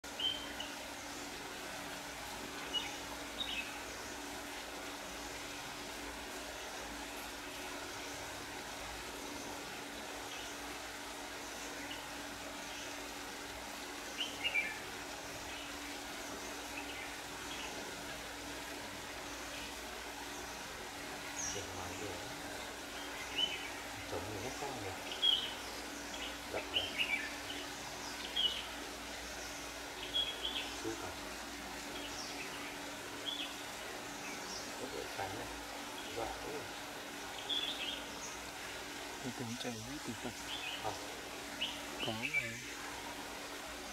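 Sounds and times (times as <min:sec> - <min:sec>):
background hiss: 0:00.0 - 0:43.9.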